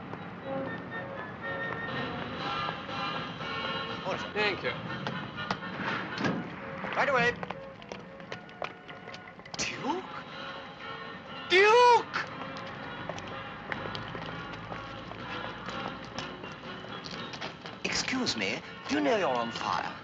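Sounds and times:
background film music: 0.0 - 20.0.

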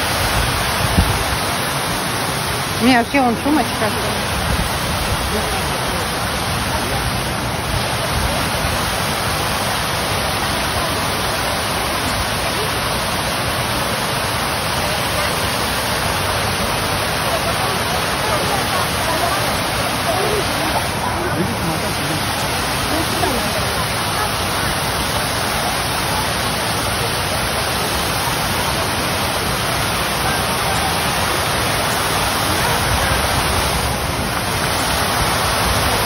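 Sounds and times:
faint voices: 0.0 - 36.0
fountain water splashing: 0.0 - 36.0.

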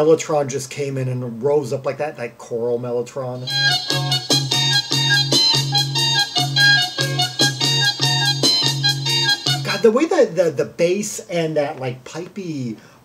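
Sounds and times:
man talking: 0.0 - 3.5, 9.6 - 12.9
prog rock with keyboards and synth: 3.5 - 9.8.

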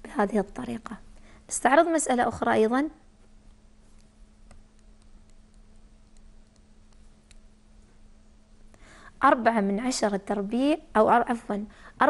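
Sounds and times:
low steady hum: 0.0 - 12.0
mouse clicks: 3.5 - 7.5.

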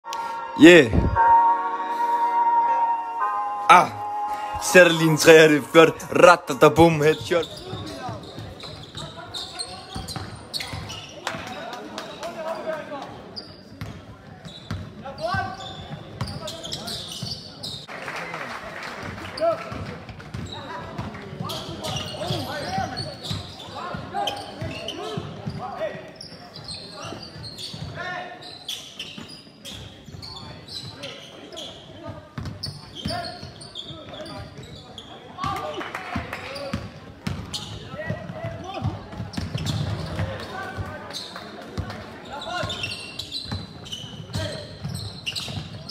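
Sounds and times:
people calling out and talking: 0.0 - 17.9.

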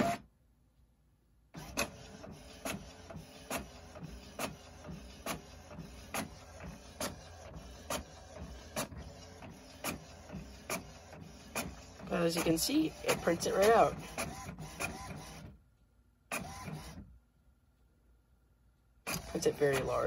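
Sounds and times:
inkjet printer whirring: 0.0 - 0.2, 1.6 - 15.6, 16.3 - 17.0, 19.1 - 20.0
printer clicking: 1.6 - 15.5, 19.1 - 20.0.

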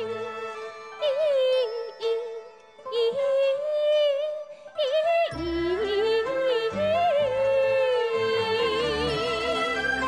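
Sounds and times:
woman singing opera style: 0.0 - 10.0.

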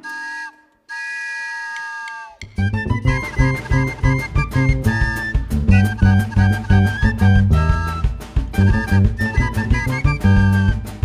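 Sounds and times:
band imitating train whistle toots: 0.0 - 11.0.

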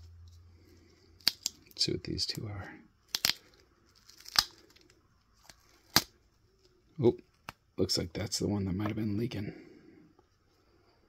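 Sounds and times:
duct tape ripping: 1.2 - 1.6, 3.0 - 6.2.

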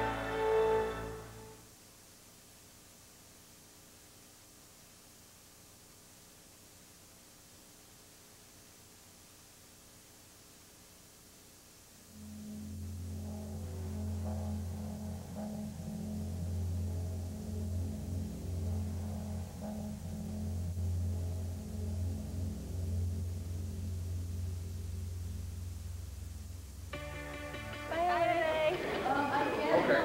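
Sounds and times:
low droning film music: 12.1 - 29.4.

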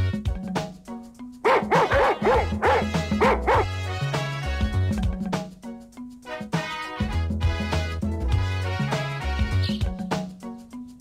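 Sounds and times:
background music: 0.0 - 11.0
dog yapping: 1.5 - 3.7.

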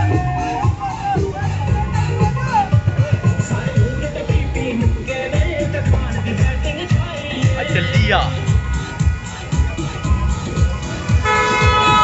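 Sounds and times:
music with steady drum beat: 0.0 - 12.0
car horn honking: 11.0 - 12.0.

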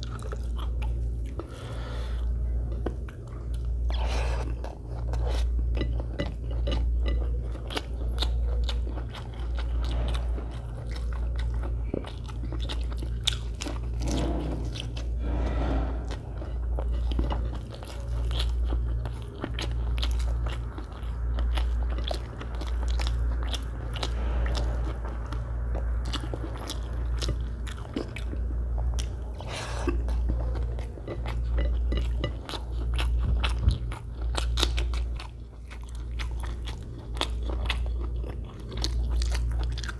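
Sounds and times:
chewing with wet mouth clicks: 0.0 - 14.0, 16.3 - 39.9.

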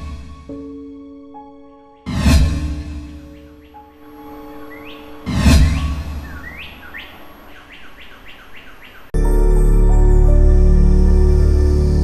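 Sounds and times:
rising bird-like chirps: 3.2 - 9.2.

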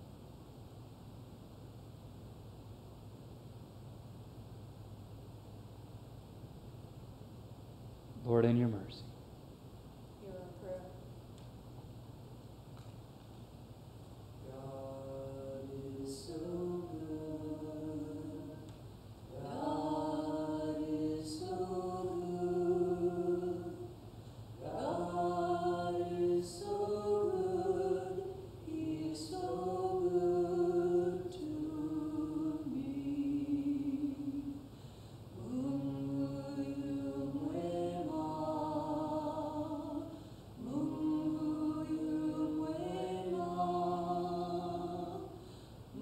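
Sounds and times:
voices singing held notes: 14.4 - 46.0.

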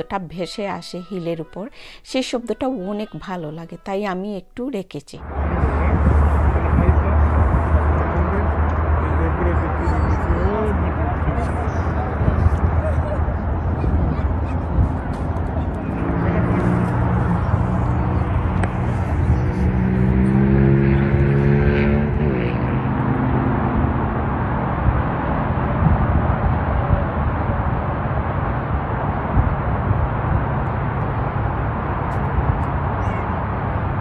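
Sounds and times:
distant highway traffic: 5.2 - 34.0
engine hum rising in pitch: 5.2 - 34.0.

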